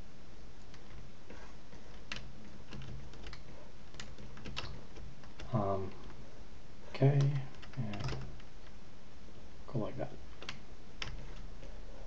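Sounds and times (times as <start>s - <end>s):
keyboard and mouse clicks: 0.6s - 1.1s, 1.8s - 6.2s, 7.2s - 8.8s, 10.3s - 11.5s.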